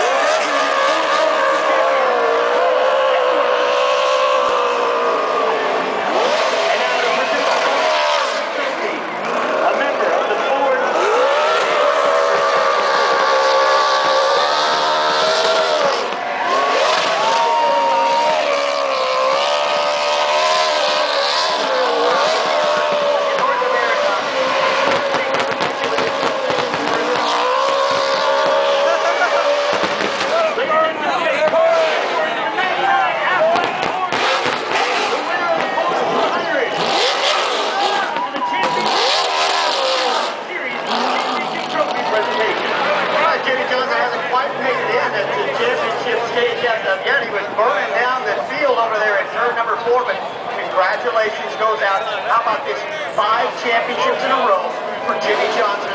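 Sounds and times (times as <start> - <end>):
spinning tyres squealing: 0.0 - 47.5
race car engine revving: 0.0 - 55.9.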